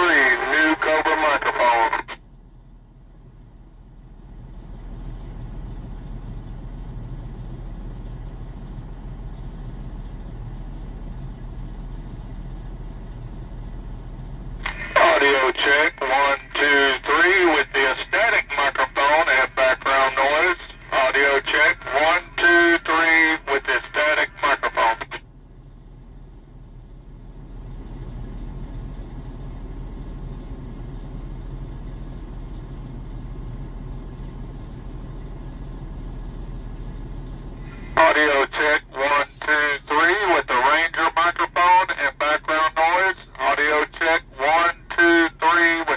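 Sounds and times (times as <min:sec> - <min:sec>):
man's voice over radio speaker: 0:00.0 - 0:02.2, 0:14.6 - 0:25.2, 0:37.6 - 0:45.9
vehicle cabin hum: 0:00.0 - 0:45.9.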